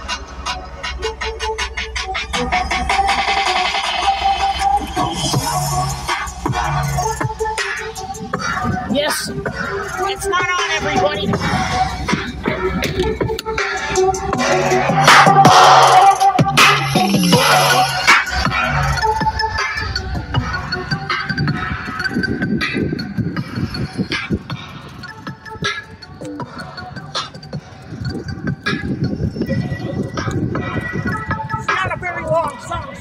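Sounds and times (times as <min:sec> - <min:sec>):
instrumental song from car speakers: 0:00.0 - 0:33.0.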